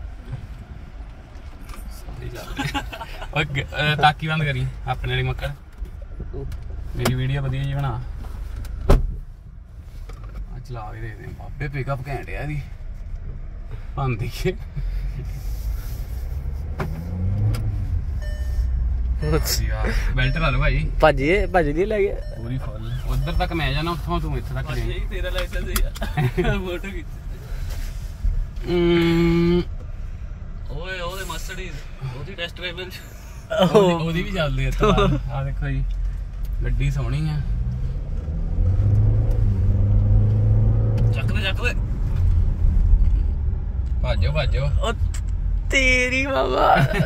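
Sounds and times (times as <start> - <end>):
car engine: 0.0 - 47.0
road rumble: 0.0 - 47.0.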